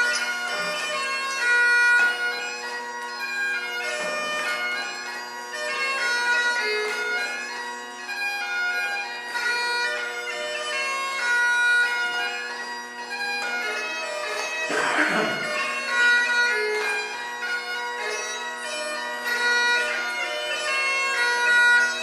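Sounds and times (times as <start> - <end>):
bagpipe drones: 0.0 - 22.0
bagpipe melody: 0.0 - 22.0.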